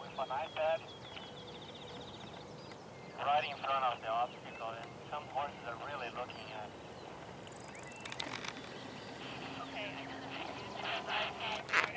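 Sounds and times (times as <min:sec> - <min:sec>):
faint voices over a radio: 0:00.0 - 0:00.9, 0:03.2 - 0:06.7, 0:08.0 - 0:11.9
high buzzing trill: 0:08.7 - 0:11.8.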